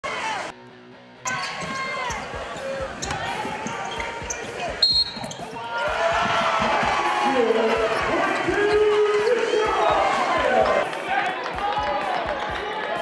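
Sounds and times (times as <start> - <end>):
players and crowd voices: 0.0 - 0.6, 1.2 - 13.0
sneakers squeaking: 1.2 - 10.0
whistle blast: 4.8 - 5.4.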